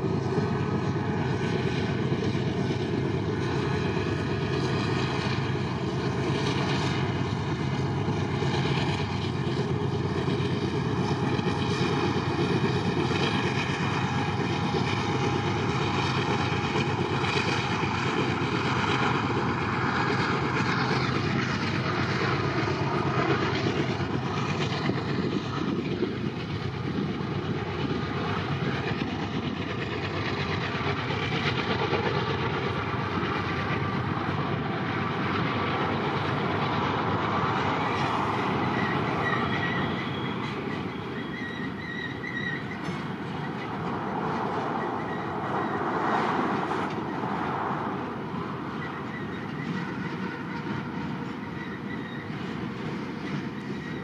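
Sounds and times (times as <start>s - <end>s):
freight train running on rails: 0.0s - 54.0s
high wheel squeal: 26.9s - 54.0s.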